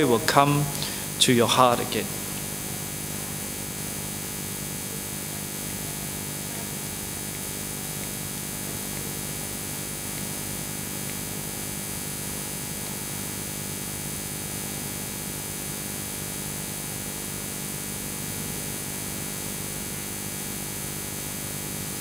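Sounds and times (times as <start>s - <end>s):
electrical mains hum with hiss: 0.0s - 22.0s.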